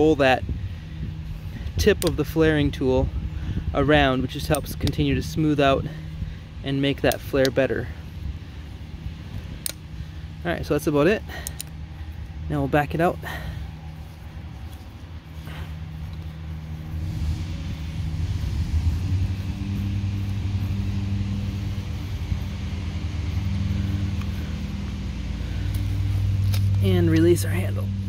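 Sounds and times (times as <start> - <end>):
motor vehicle engine hum: 0.0 - 28.0.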